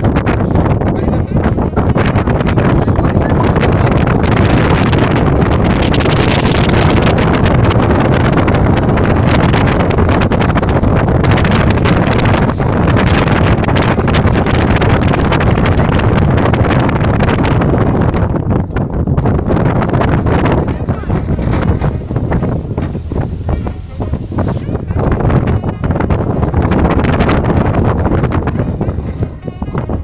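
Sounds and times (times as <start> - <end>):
vehicle driving on dirt road: 0.0 - 30.0
wind buffeting microphone: 0.0 - 30.0.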